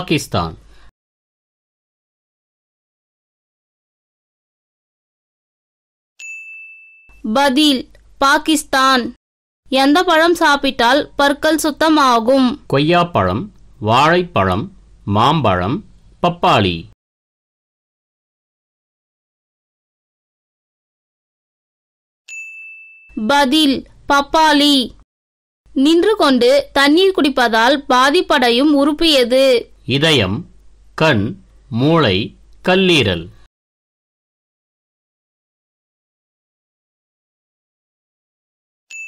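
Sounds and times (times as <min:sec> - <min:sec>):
high ding chime: 0:06.2 - 0:07.2, 0:22.3 - 0:23.2.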